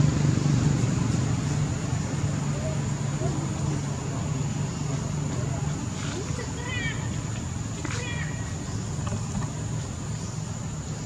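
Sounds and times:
steady low rumble: 0:00.0 - 0:06.5.

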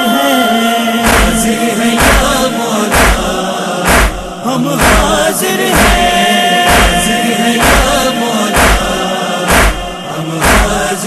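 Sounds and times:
chorus chanting a lament: 0:00.0 - 0:11.0
heavy steady beat: 0:01.0 - 0:10.9.

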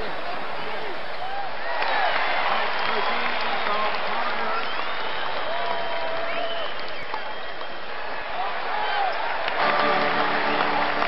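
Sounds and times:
voices calling out: 0:00.0 - 0:01.4
crowd applause: 0:00.0 - 0:11.0.

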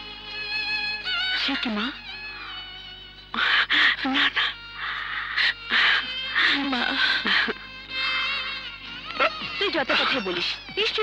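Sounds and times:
soft film music: 0:00.0 - 0:11.0.

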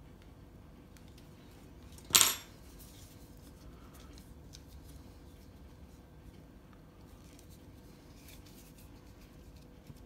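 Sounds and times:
metal blade clinking on table: 0:02.1 - 0:02.5.

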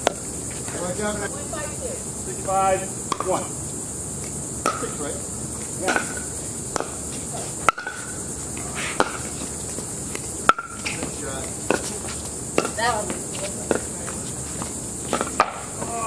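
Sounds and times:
steady high hiss: 0:00.0 - 0:16.0.

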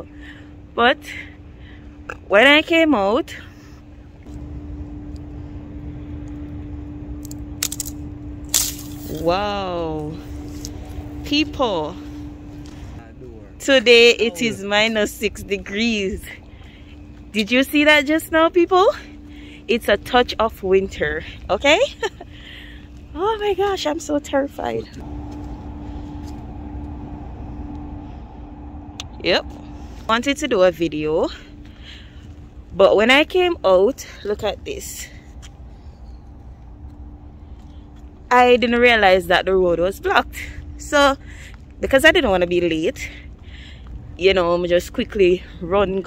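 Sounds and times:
steady low hum: 0:00.0 - 0:46.0
street traffic rumble: 0:00.0 - 0:46.0.

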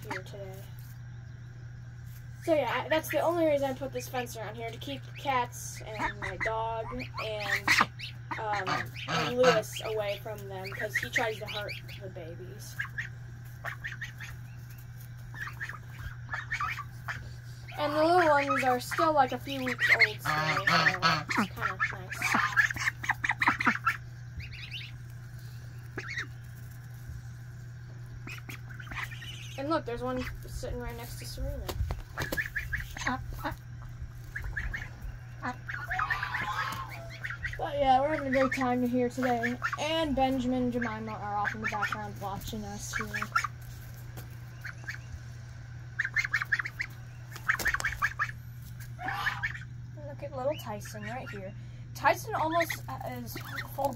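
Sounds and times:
ducks quacking: 0:00.0 - 0:01.0, 0:02.4 - 0:53.9
low hum: 0:00.0 - 0:53.9
young birds peeping: 0:00.0 - 0:53.9
goose honking: 0:05.2 - 0:14.5, 0:15.1 - 0:25.1, 0:25.9 - 0:26.5, 0:32.2 - 0:45.1, 0:45.9 - 0:49.7, 0:50.4 - 0:53.9.

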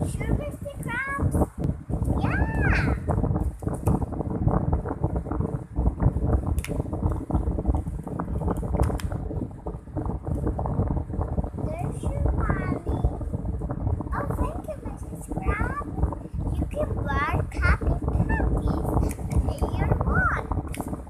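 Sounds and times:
child's gliding vocal sound: 0:02.1 - 0:03.1, 0:11.6 - 0:13.2, 0:14.1 - 0:20.7.

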